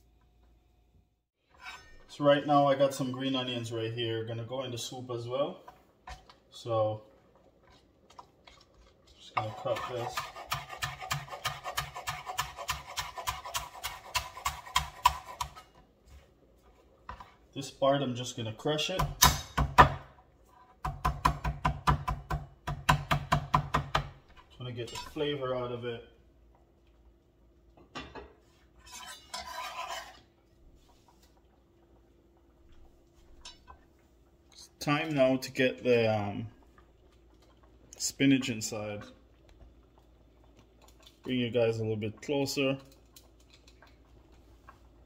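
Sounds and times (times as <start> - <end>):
stirring and scraping in a pot: 1.4 - 3.5, 4.8 - 17.8, 28.4 - 31.5
knife chopping on cutting board: 9.8 - 15.6.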